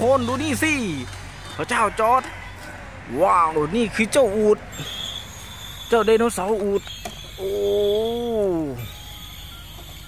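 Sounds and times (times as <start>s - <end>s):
person exclaiming oh: 7.4s - 8.8s.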